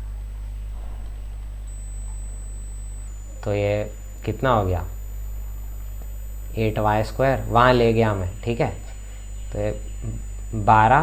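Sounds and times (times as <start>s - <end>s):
high-pitched whine: 0.0s - 11.0s
low electrical hum: 0.0s - 11.0s.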